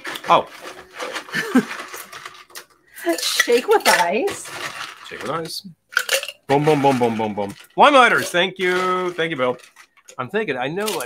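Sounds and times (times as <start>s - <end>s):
glassware and bar tools clinking: 0.1s - 10.2s.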